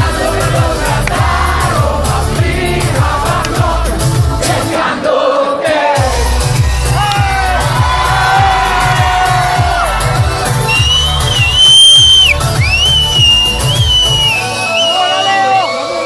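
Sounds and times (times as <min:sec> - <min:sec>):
pulsing bass beat: 0:00.0 - 0:04.7, 0:06.0 - 0:14.6
live pop band playing: 0:00.0 - 0:04.9, 0:05.8 - 0:16.0
crowd cheering: 0:06.9 - 0:16.0
shrill whistle from audience: 0:10.6 - 0:16.0.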